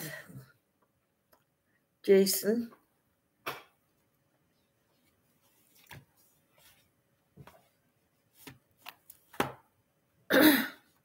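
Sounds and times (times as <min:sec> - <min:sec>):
person coughing: 0:10.3 - 0:10.9.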